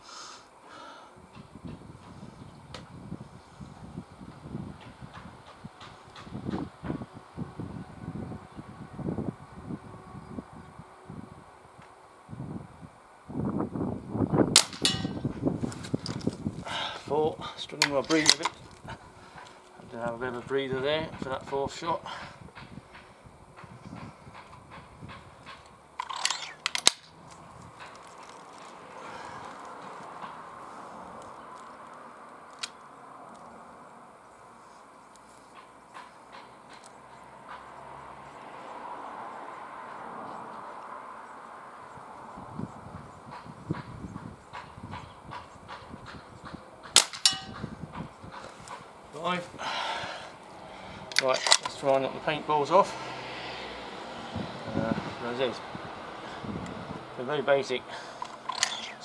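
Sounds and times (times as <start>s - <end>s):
air rifle shots: 14.5s - 15.2s, 46.9s - 47.6s.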